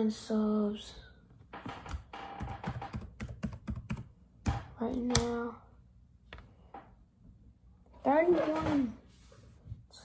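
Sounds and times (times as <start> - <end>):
fingers typing: 1.6 - 4.6.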